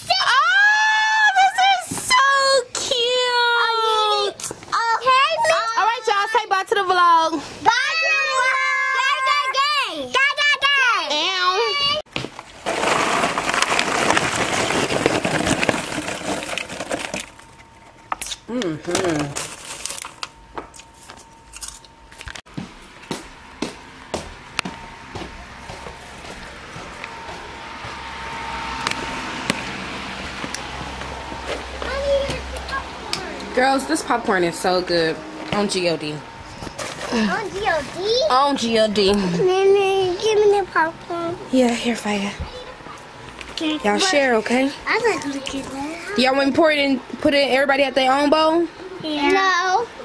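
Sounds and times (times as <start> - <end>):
crinkling rustle: 12.3 - 17.9, 19.0 - 22.4
hand rummaging through popcorn: 12.4 - 17.9, 18.9 - 20.3.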